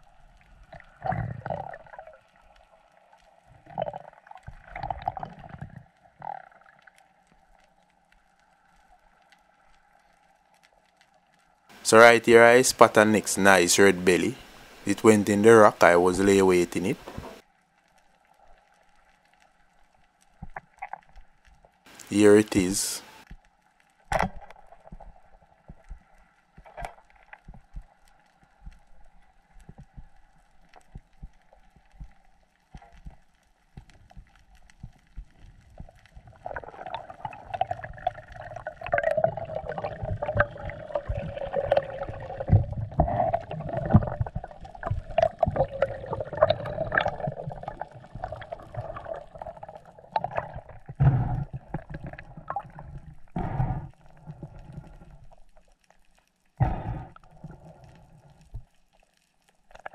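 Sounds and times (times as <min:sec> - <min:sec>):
water rushing and gurgling: 0:11.7 - 0:17.4, 0:35.7 - 0:55.5
underwater clicks and snaps: 0:17.0 - 0:22.1, 0:23.2 - 0:59.9.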